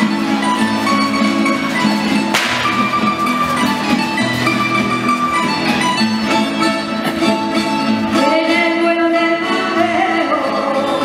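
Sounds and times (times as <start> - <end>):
strummed and plucked guitars: 0.0 - 11.0
sharp percussive strike: 2.3 - 3.8.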